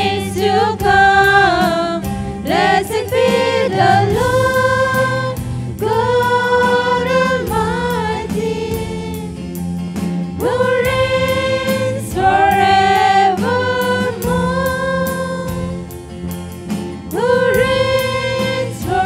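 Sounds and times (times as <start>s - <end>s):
women singing together: 0.0s - 9.4s, 10.4s - 15.9s, 17.1s - 19.0s
acoustic guitar: 0.0s - 19.0s
electric bass guitar: 0.0s - 19.0s.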